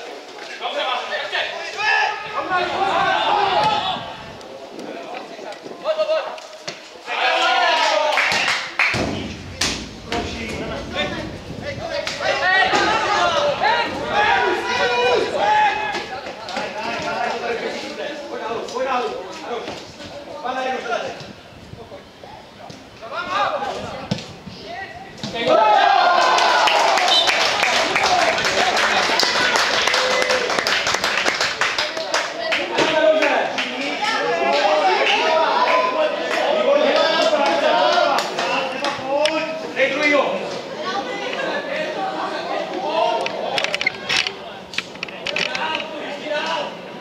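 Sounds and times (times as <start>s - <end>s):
people calling and chatting: 0.0s - 47.0s
loud crowd shouting: 0.7s - 4.4s, 7.0s - 17.6s, 24.8s - 30.8s
players and spectators shouting: 0.7s - 4.4s, 7.0s - 17.8s, 24.6s - 30.6s
ball thud: 8.3s - 13.0s.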